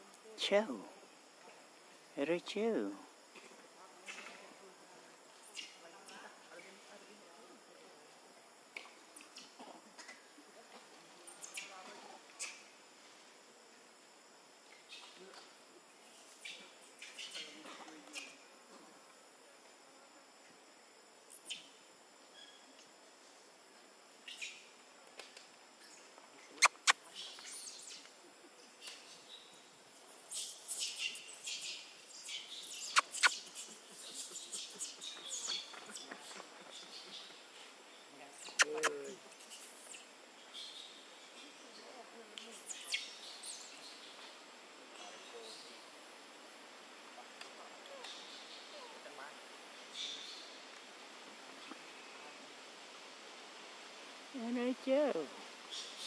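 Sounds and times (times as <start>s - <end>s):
sharp clicks: 26.6s - 27.0s, 32.9s - 33.4s.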